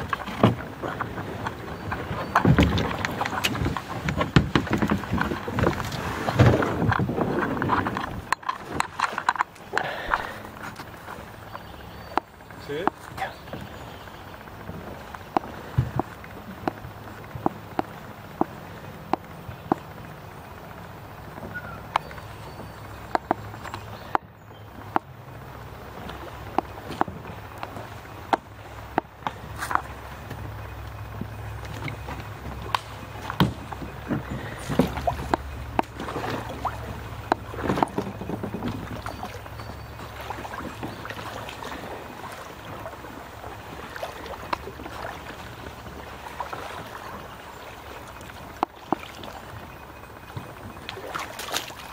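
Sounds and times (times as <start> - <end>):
low rumble of moving water: 0.0 - 51.9
water lapping against kayak hull: 0.0 - 51.9
knocks on kayak hull: 32.7 - 36.0.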